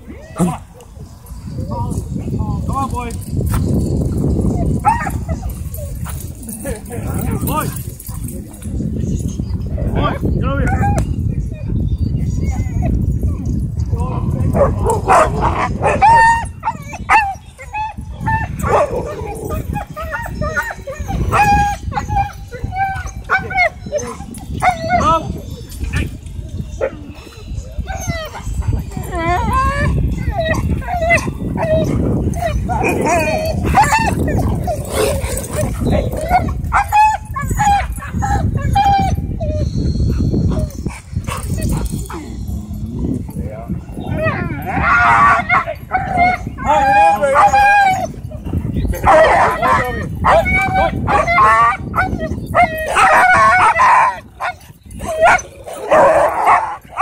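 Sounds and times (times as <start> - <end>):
dogs barking and yipping: 0.0 - 11.1, 12.0 - 57.0.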